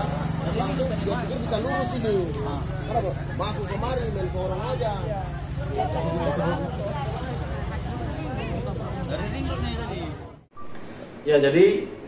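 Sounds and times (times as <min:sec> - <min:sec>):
crowd shouting and talking: 0:00.0 - 0:10.5.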